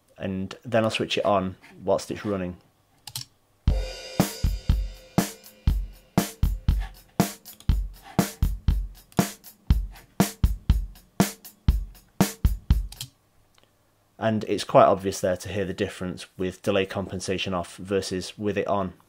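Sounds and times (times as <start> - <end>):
drum kit playing: 3.7 - 13.0.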